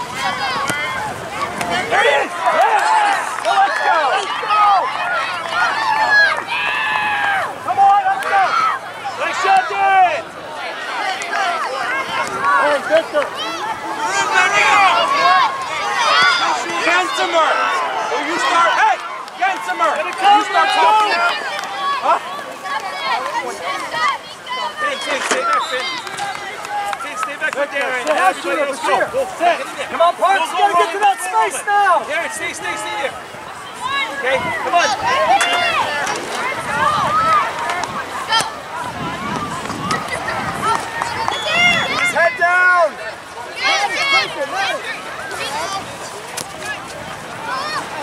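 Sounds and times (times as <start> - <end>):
people shouting calls: 0.0 - 48.0.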